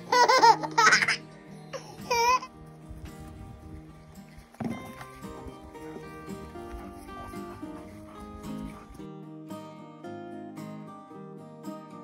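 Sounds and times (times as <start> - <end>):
baby laughing: 0.0 - 2.5
soft background music: 0.0 - 9.4.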